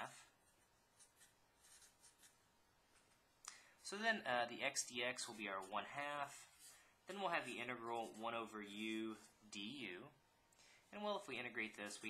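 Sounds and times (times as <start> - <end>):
marker scratching on paper: 0.0 - 2.5, 5.2 - 8.4.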